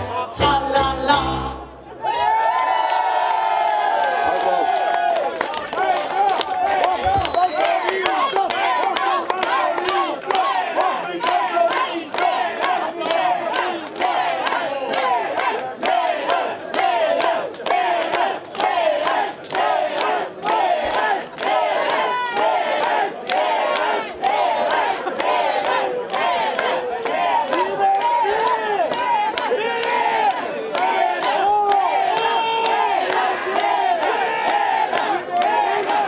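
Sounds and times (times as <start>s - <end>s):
crowd shouting and chanting: 0.0s - 36.0s
rhythmic clapping: 4.4s - 36.0s.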